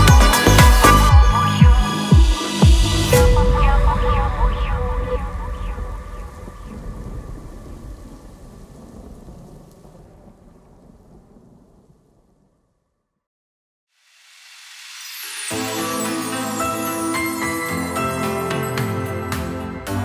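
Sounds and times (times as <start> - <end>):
rising swell of noise: 1.9 - 8.9
rumbling noise wash: 2.7 - 12.4.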